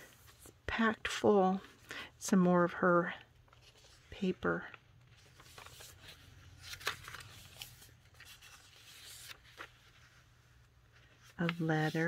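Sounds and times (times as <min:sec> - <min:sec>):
paper pages rustling: 0:02.7 - 0:12.0.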